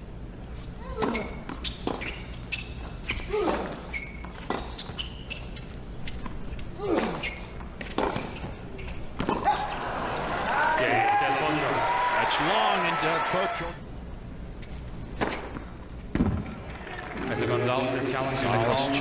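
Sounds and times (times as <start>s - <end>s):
sneakers squeaking on court: 0.7s - 9.9s, 14.6s - 15.8s
racket striking tennis ball: 7.8s - 8.4s, 9.2s - 9.7s, 15.2s - 16.4s
crowd noise: 9.1s - 13.8s, 16.2s - 19.0s.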